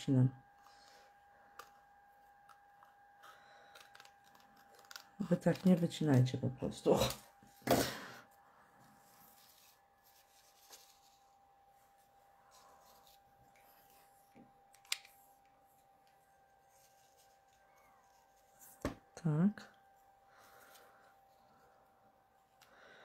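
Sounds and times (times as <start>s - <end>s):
faint steady hum: 0.0s - 23.0s
paper rustle: 3.5s - 6.2s, 9.0s - 14.2s.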